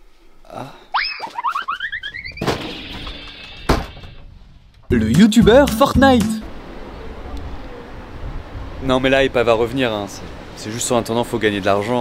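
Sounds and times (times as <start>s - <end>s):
cartoon pitch swoop and climbing notes: 1.0s - 2.5s.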